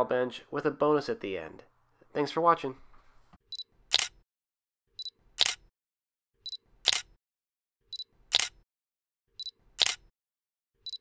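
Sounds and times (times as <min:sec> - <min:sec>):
camera shutter click: 0:03.9 - 0:04.2, 0:05.4 - 0:05.6, 0:06.9 - 0:07.1, 0:08.3 - 0:08.6, 0:09.8 - 0:10.1.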